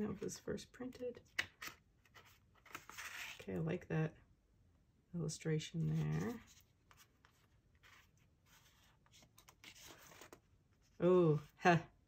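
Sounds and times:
paperback pages turning: 1.2 - 3.5, 5.8 - 10.5.

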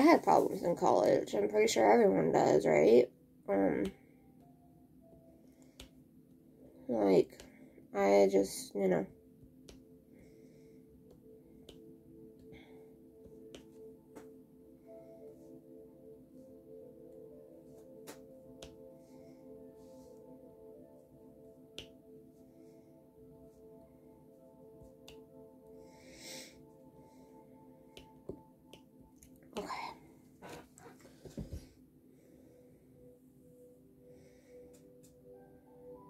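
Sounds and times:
music with ringing tones: 0.0 - 36.0.

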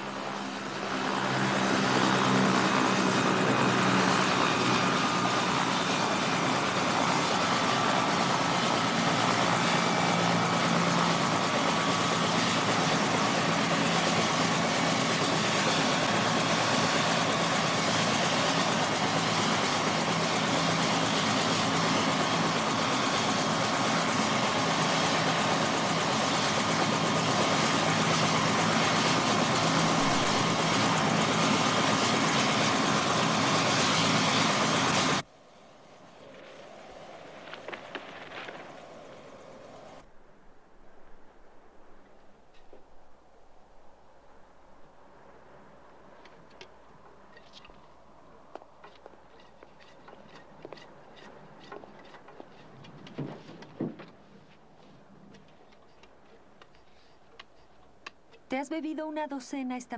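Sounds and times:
helicopter rotor and engine: 0.0 - 40.1, 45.8 - 59.9
high engine whine: 24.5 - 40.3.

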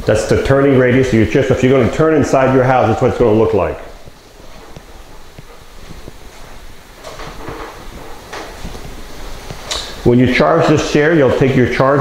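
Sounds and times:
footsteps on hard floor: 1.5 - 10.0
power wheelchair motors: 4.0 - 10.9.

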